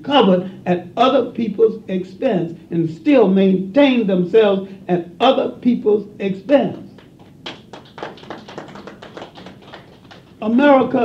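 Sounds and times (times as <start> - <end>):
audience clapping: 7.0 - 10.6.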